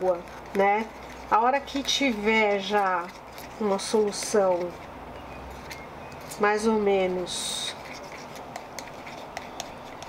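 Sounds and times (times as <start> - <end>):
spoon stirring in plastic cup: 0.0 - 10.0.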